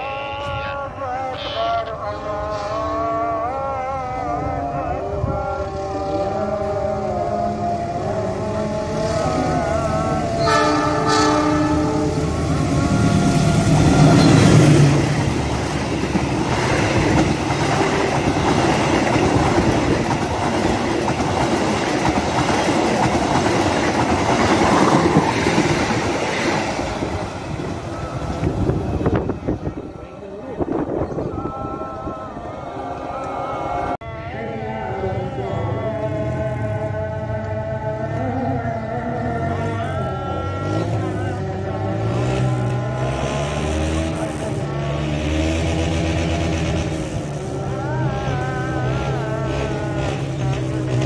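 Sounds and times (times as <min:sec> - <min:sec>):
train passing with wheel and rail noise: 0:00.0 - 0:51.0
train horn: 0:08.6 - 0:14.9.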